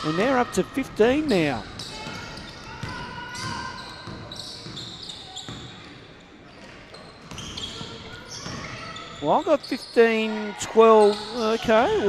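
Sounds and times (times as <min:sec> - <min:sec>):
basketball bouncing: 0:01.1 - 0:05.8, 0:07.2 - 0:08.9
sneakers squeaking on hardwood: 0:01.1 - 0:10.3, 0:10.9 - 0:12.0.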